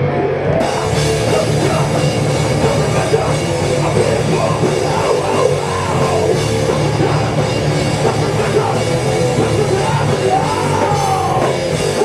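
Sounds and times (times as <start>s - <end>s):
hardcore band playing live: 0.0s - 12.0s.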